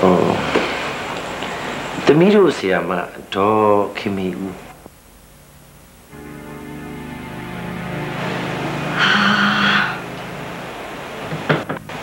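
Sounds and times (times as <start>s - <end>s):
low steady hum: 3.2s - 12.0s
screeching sting: 6.1s - 11.3s.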